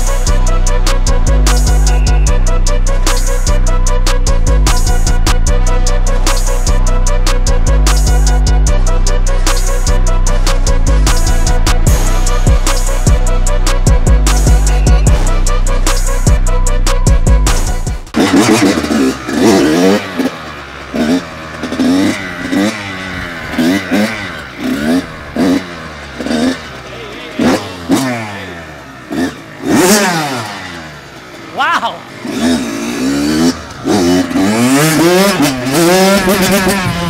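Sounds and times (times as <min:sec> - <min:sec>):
dirt bike engine revving: 0:00.0 - 0:37.0.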